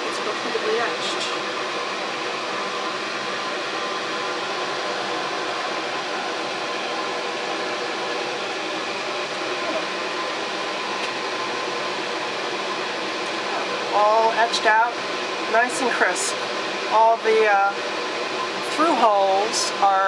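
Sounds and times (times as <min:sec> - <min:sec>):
exhaust fan whirring: 0:00.0 - 0:20.0.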